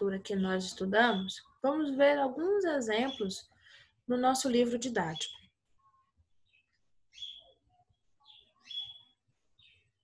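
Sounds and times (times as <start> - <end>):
short high bird chirps: 7.1 - 7.6, 8.3 - 9.2.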